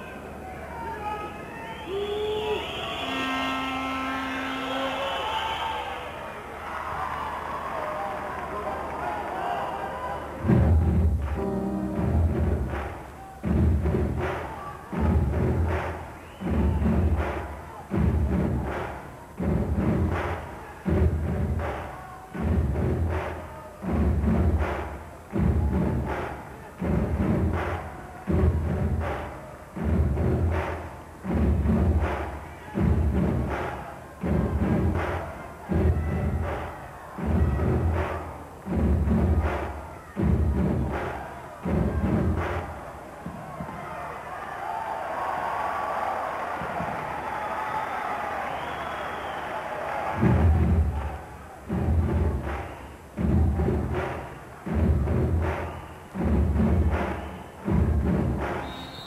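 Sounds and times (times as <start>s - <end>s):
crowd noise in a hall: 0.0s - 59.0s
big drum booming: 10.4s - 21.8s, 22.4s - 36.6s, 37.2s - 42.8s, 50.1s - 59.0s.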